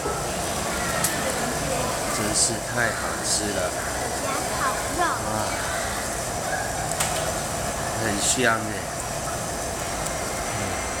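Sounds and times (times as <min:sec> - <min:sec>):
restaurant dining room background noise: 0:00.0 - 0:11.0.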